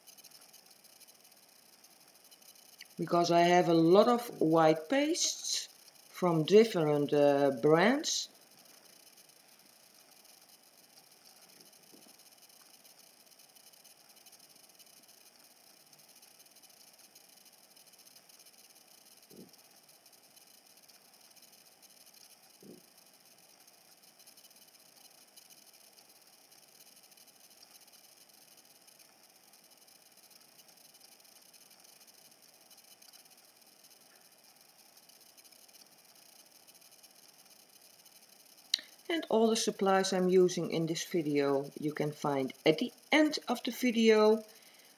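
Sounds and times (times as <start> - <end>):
faint steady hiss: 0.0 - 44.9.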